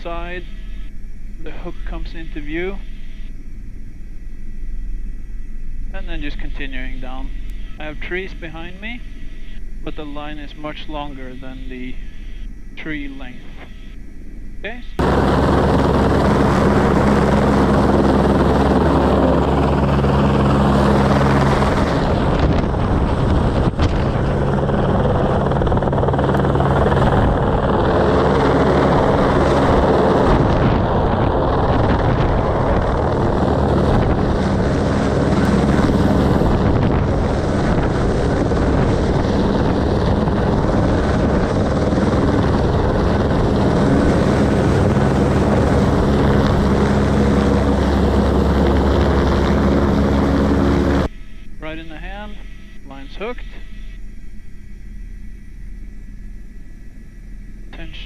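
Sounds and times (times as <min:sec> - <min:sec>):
helicopter rotor and engine: 0:00.0 - 0:58.0.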